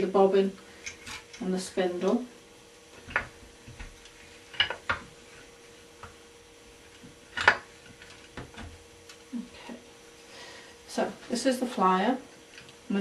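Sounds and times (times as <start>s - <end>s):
wooden parts clicking: 4.5s - 5.1s.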